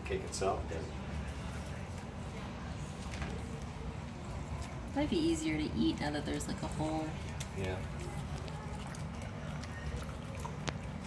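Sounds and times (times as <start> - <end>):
dog licking and chewing: 1.4 - 11.0.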